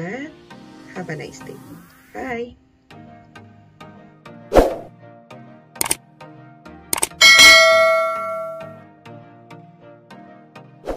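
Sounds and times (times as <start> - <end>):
notification bell ding: 7.2 - 8.8.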